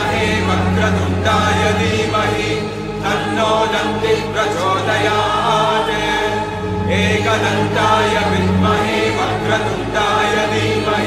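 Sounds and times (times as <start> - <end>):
group chanting a mantra: 0.0 - 11.0
steady low drone: 0.0 - 11.0.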